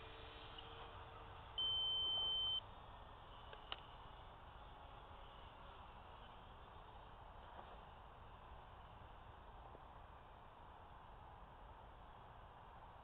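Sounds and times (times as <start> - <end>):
faint background hiss: 0.0 - 13.0
electronic beep: 1.6 - 2.6.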